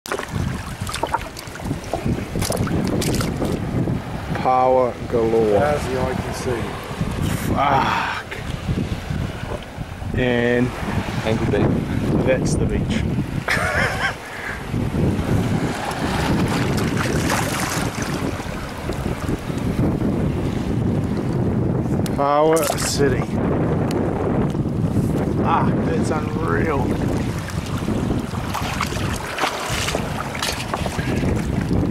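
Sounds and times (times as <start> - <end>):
seawater sloshing: 0.0 - 4.4, 5.0 - 12.2, 15.1 - 21.4, 22.4 - 23.4, 24.8 - 31.9
water splashes: 0.0 - 12.2, 15.2 - 21.4, 22.3 - 23.4, 25.1 - 31.9
wind rumbling on microphone: 0.0 - 31.9.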